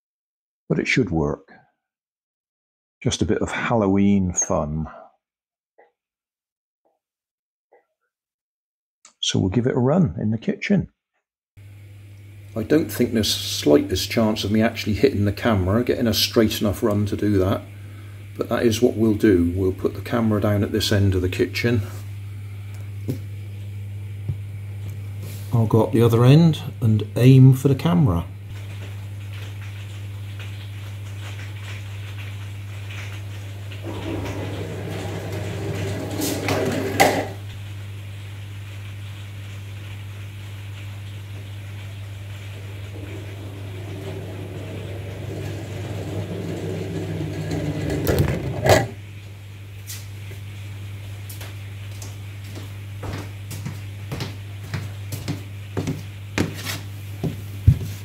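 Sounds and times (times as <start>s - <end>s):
steady low hum: 41.0s - 57.8s.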